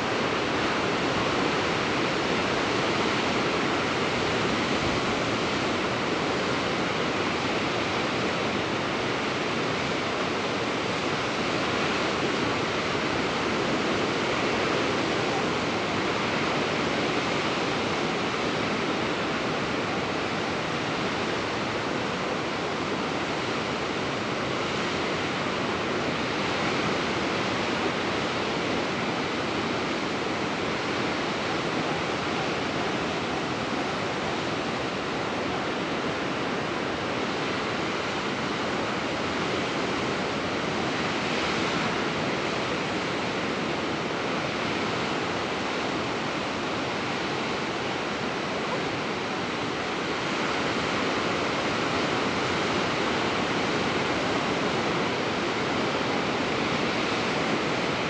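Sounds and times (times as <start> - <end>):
ocean surf on rocks: 0.0 - 58.0.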